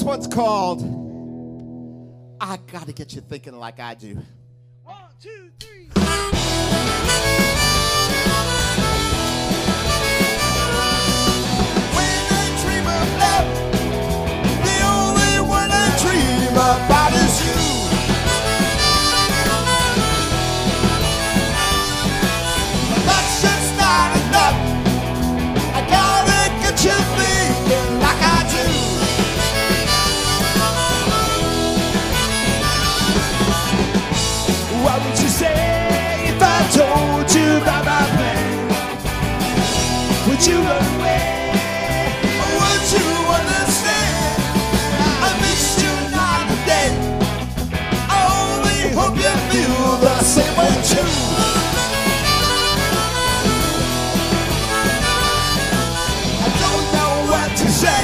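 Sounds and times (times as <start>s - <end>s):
rock band playing live: 0.0s - 2.6s, 5.9s - 58.0s
harmonica playing held notes: 5.9s - 13.4s, 14.8s - 24.6s, 25.8s - 35.0s, 48.7s - 58.0s.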